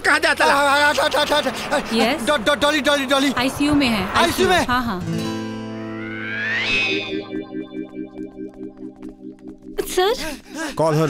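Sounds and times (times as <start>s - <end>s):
dramatic film music: 0.1s - 11.0s.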